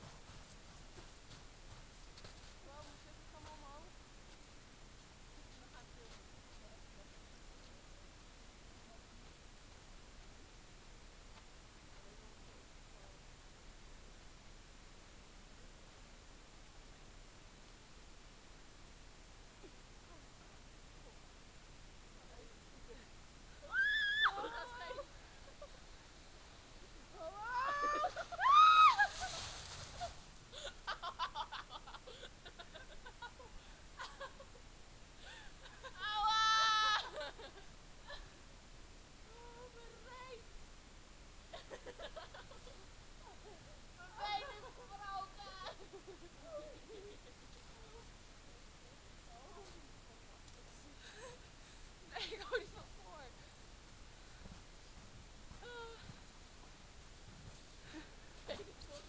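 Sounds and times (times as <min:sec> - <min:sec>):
person laughing: 0:27.5 - 0:28.6.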